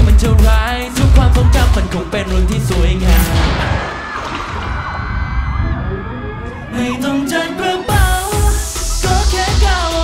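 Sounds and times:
man singing: 0.0s - 3.6s, 6.6s - 10.0s
strong drum beat: 0.0s - 4.1s
live pop music: 0.0s - 4.2s, 6.0s - 10.0s.

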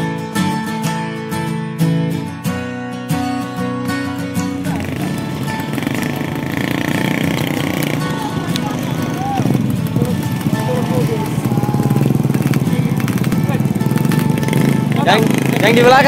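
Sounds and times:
motorcycle and scooter engines: 4.4s - 16.0s
voices calling out: 4.4s - 16.0s.

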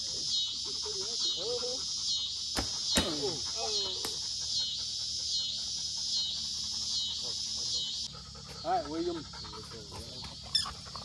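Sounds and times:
insect chorus buzzing: 0.0s - 11.0s.

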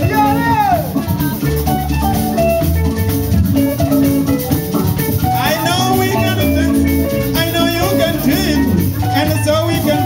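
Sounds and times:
drum kit: 0.0s - 10.0s
live dance band: 0.0s - 10.0s.

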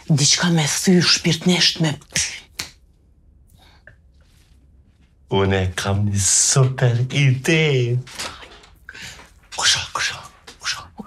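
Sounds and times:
finger snaps: 2.5s - 2.8s
person speaking: 5.3s - 11.0s.

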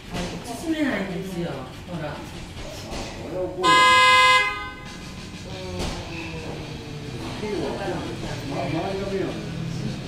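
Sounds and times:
buzzy horn blast: 3.6s - 5.2s.

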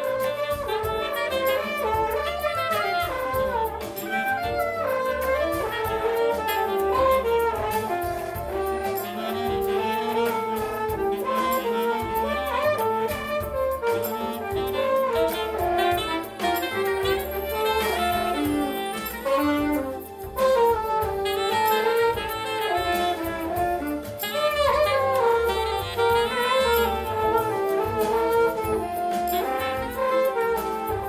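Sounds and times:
bass line: 0.0s - 31.0s
drums: 0.0s - 31.0s
saxophone jazz melody: 0.0s - 31.0s.

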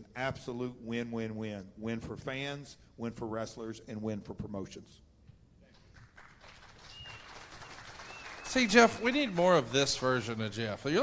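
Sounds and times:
audience applause: 6.0s - 10.4s.

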